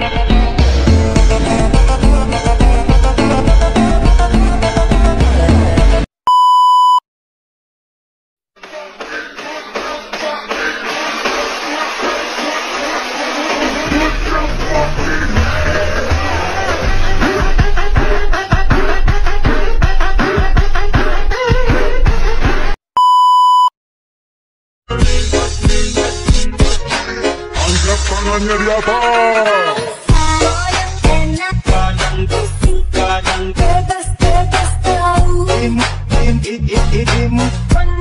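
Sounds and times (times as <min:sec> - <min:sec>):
music: 0:00.0 - 0:06.1, 0:08.6 - 0:22.8, 0:24.9 - 0:38.0
electronic beep: 0:06.3 - 0:07.0, 0:23.0 - 0:23.7.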